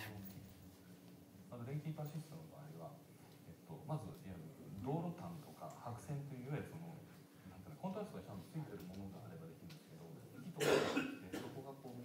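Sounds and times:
person coughing: 0:10.6 - 0:11.6.

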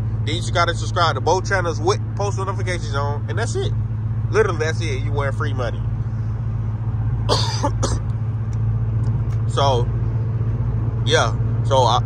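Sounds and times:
car cabin drone: 0:00.0 - 0:12.0
man coughing: 0:07.3 - 0:08.1.

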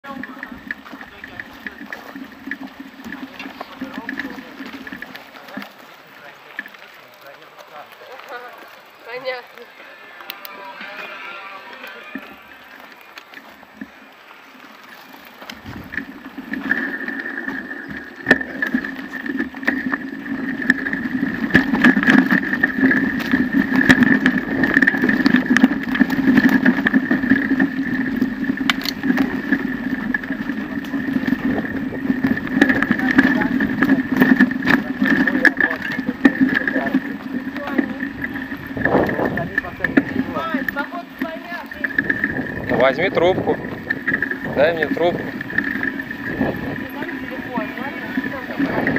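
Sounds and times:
bike knocking over bumps: 0:00.0 - 0:09.2, 0:14.6 - 0:48.9
bicycle tyres and frame rattling: 0:00.0 - 0:48.9.

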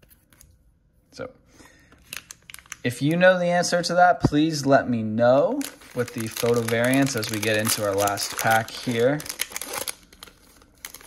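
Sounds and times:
plastic wrapper crinkling: 0:01.9 - 0:02.9, 0:05.5 - 0:11.0.

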